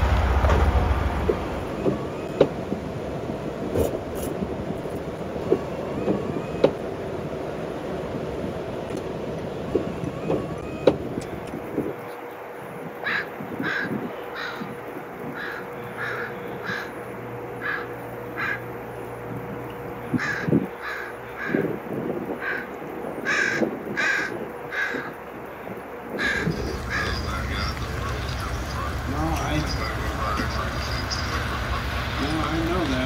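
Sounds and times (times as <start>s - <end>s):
faint steady hum: 0.0s - 33.0s
bird calling: 9.7s - 33.0s.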